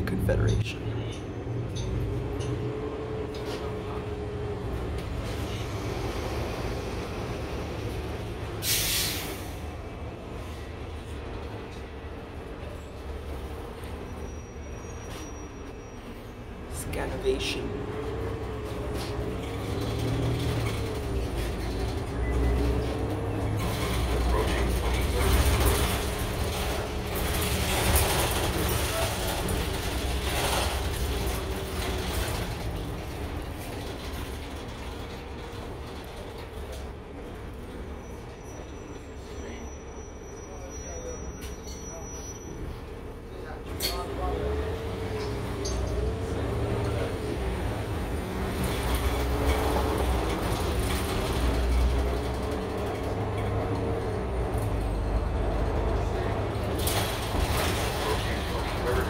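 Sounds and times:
bus engine rumble and whine: 0.0s - 59.0s
bus body knocks and rattles: 18.1s - 37.9s, 44.0s - 59.0s.

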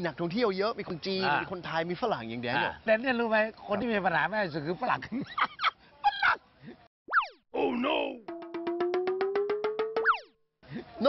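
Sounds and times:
whistle-like pitch glide: 8.3s - 10.4s.

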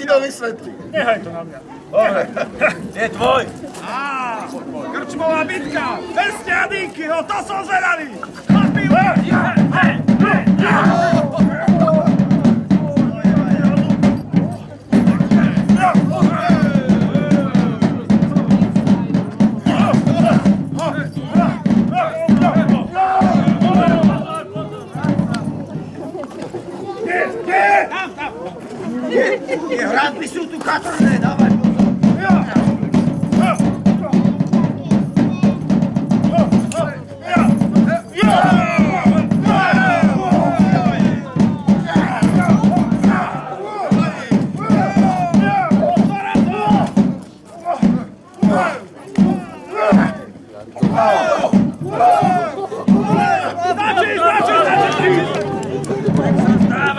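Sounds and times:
crowd noise: 0.0s - 56.9s
people shouting: 1.9s - 25.7s, 26.9s - 28.4s, 30.9s - 56.9s
drum rolls: 5.2s - 27.7s, 30.8s - 56.9s.

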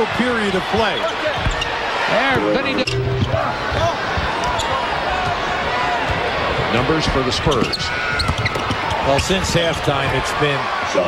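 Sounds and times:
sports commentary: 0.0s - 5.5s, 6.6s - 8.1s, 9.0s - 11.0s
arena crowd noise: 0.0s - 11.0s.

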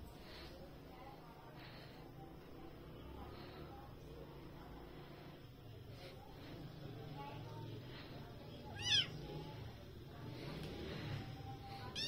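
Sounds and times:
kitten mewing: 8.7s - 9.2s.

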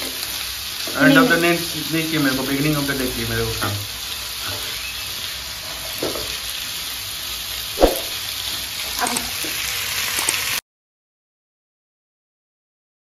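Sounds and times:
vegetables sizzling in a pan: 0.0s - 10.6s.

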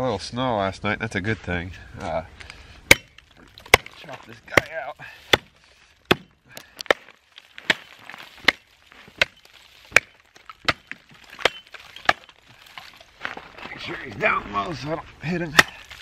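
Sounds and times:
hatchet chopping into ice: 2.9s - 12.9s, 15.5s - 16.0s.

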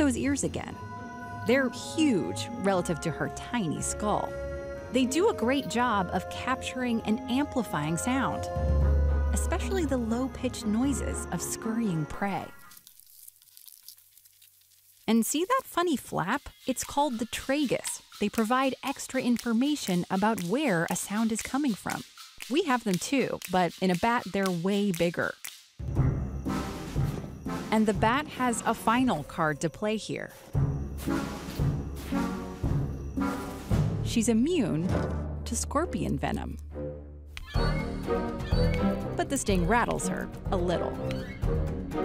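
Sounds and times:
dramatic score music: 3.4s - 12.6s, 25.5s - 29.3s, 30.4s - 35.6s, 36.6s - 42.0s
faint crackles: 12.5s - 19.0s.

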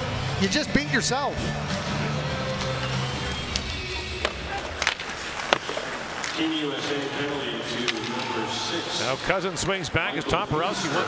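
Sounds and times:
low rink rumble: 1.4s - 8.0s
hockey sticks and puck clacking: 2.4s - 7.2s, 7.8s - 8.4s.

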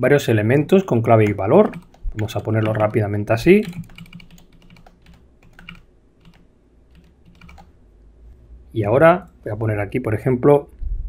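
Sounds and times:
faint keyboard keystrokes: 1.2s - 3.0s, 3.6s - 7.7s.

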